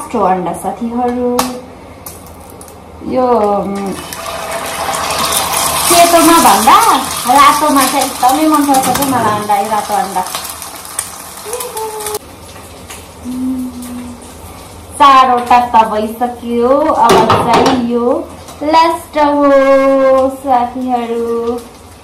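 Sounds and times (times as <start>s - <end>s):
eggs sizzling in a pan: 3.8s - 13.3s.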